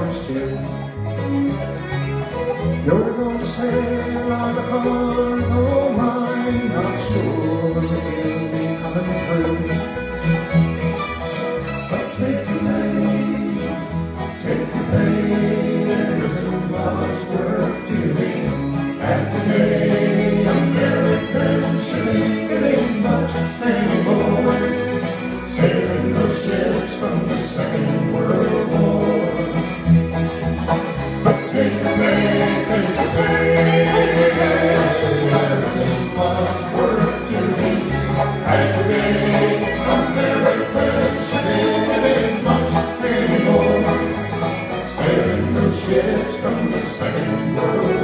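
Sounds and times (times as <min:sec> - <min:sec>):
folk band playing: 0:00.0 - 0:48.0
voices singing held notes: 0:11.9 - 0:29.8, 0:31.1 - 0:48.0.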